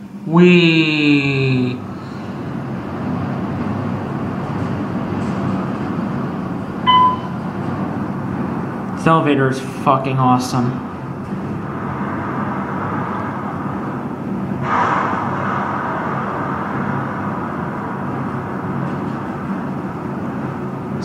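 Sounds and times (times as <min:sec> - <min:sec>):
elevator rushing hum: 0:00.0 - 0:21.0.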